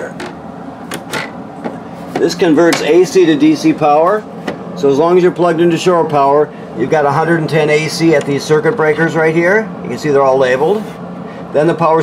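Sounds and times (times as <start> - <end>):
panel cover clicks and knocks: 0.2 - 3.0.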